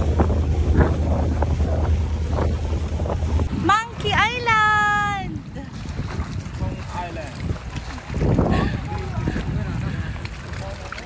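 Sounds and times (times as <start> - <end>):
motorboat engine drone: 0.0 - 6.5
rushing water: 0.0 - 11.0
wind buffeting microphone: 0.0 - 11.0
woman calling out: 3.6 - 5.4.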